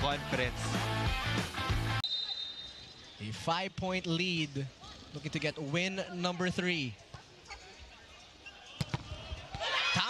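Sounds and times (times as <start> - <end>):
crowd cheering: 9.1 - 10.0.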